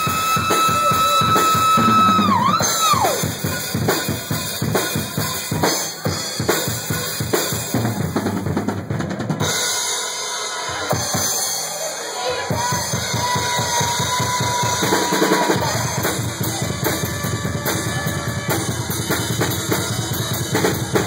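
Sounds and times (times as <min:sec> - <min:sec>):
rock drum solo: 0:00.0 - 0:21.0.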